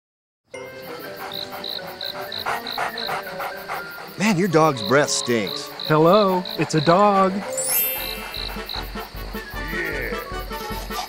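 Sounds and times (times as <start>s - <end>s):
crickets chirping: 0.5s - 11.0s
soft background music: 0.5s - 11.0s.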